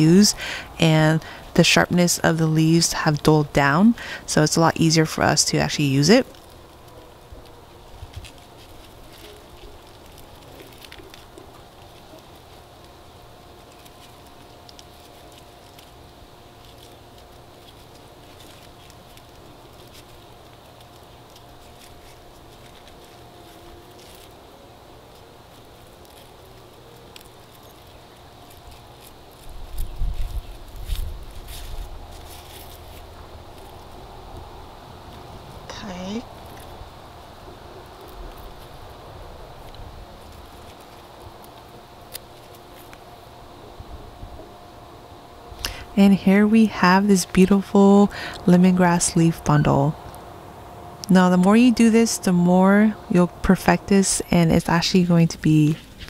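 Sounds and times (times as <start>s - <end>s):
faint steady hum: 0.0s - 56.0s
leaves rustling and crackling: 0.0s - 56.0s.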